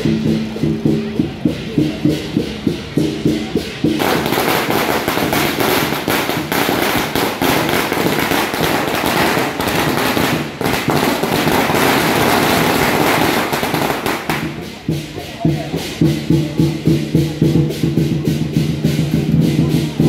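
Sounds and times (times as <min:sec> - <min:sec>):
firecrackers crackling: 0:00.0 - 0:20.0
rhythmic percussion music: 0:00.0 - 0:20.0.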